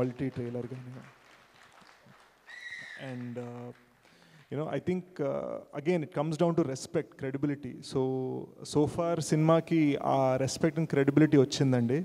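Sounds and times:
short high whistle: 2.5s - 3.1s.

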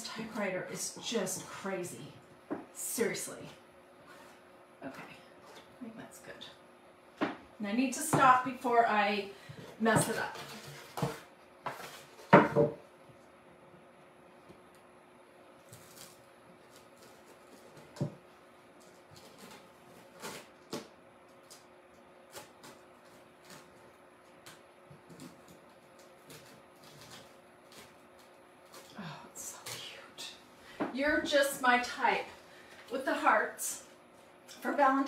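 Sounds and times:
faint room hum: 0.0s - 35.0s.

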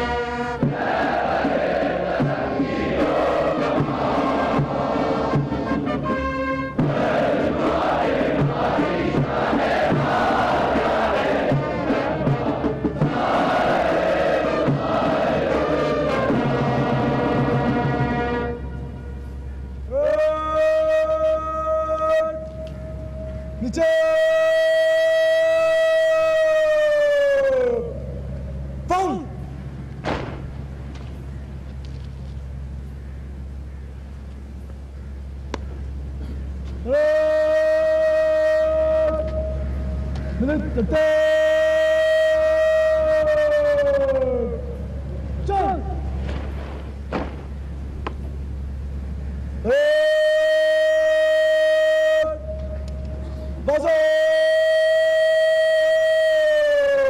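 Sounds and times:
bugle long note: 0.0s - 0.8s, 2.3s - 6.9s, 10.2s - 29.7s, 36.8s - 46.2s, 48.5s - 57.0s
person shouting drawn-out command: 19.9s - 22.5s, 23.6s - 28.0s, 28.9s - 29.4s, 36.8s - 39.6s, 40.4s - 44.8s, 45.4s - 46.2s, 53.6s - 57.0s.

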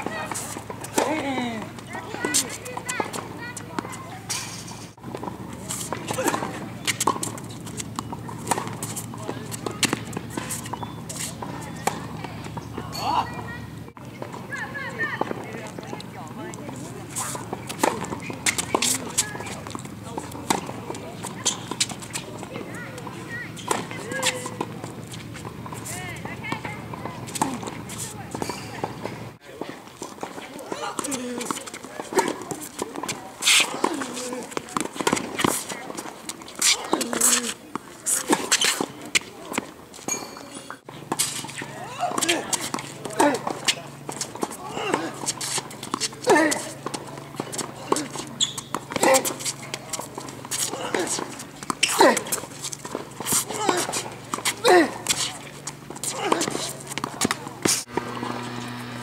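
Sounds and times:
tennis ball hit by racket: 0.0s - 29.3s, 30.0s - 59.0s
indistinct voices: 0.0s - 59.0s
ball bouncing on hard court: 16.6s - 29.2s, 31.0s - 59.0s.

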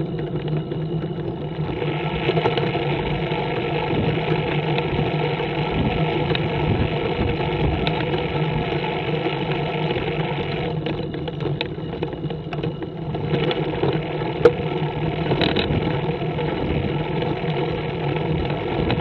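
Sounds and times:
trike engine humming: 0.0s - 19.0s.

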